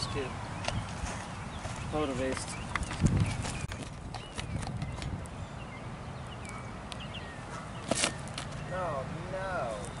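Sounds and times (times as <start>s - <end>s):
wind rumbling on microphone: 0.0s - 7.6s.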